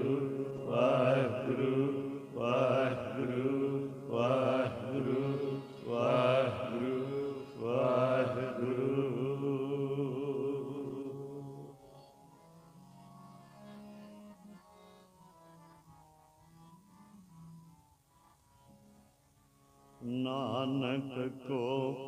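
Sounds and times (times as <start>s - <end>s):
men chanting devotional song: 0.0s - 11.8s, 20.0s - 22.0s
harmonium drone: 0.0s - 22.0s.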